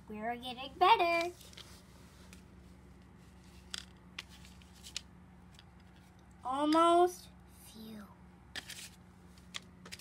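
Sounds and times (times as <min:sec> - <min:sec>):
low room hum: 0:00.0 - 0:10.0
faint paper rustles: 0:01.2 - 0:05.1, 0:08.5 - 0:10.0.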